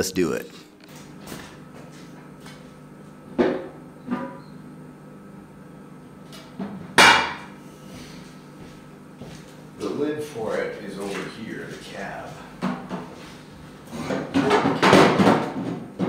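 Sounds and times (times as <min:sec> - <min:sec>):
steady low hum: 0:00.0 - 0:14.9.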